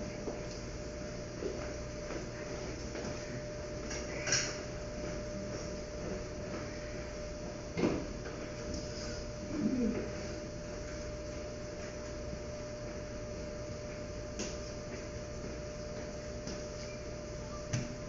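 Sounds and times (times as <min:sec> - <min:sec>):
equipment humming: 0:00.0 - 0:18.0.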